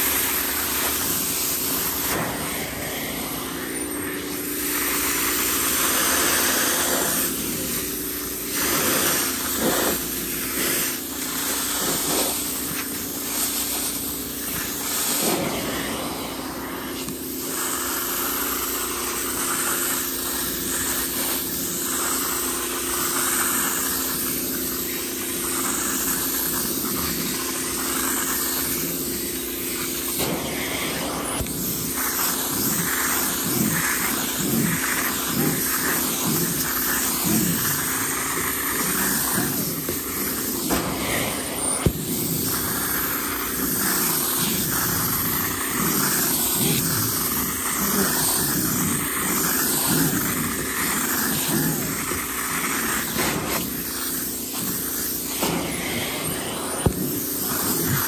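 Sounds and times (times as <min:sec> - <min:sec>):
rhythmic suction sound: 0:00.0 - 0:58.0
vacuum motor hiss and hum: 0:00.0 - 0:58.0
upholstery tool pulled across fabric: 0:00.7 - 0:07.8, 0:14.4 - 0:17.1, 0:30.1 - 0:53.9, 0:54.5 - 0:58.0.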